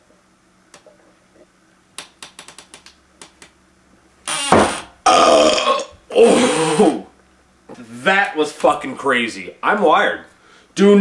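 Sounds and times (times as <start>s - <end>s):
quick run of sharp clicks: 2.0s - 3.6s.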